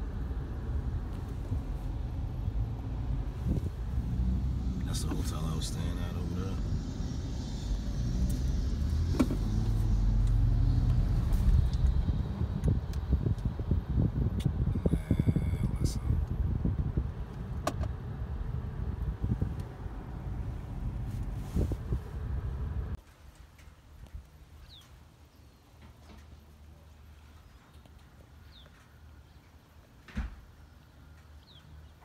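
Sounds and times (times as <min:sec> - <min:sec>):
car road and engine rumble: 0:00.0 - 0:24.8.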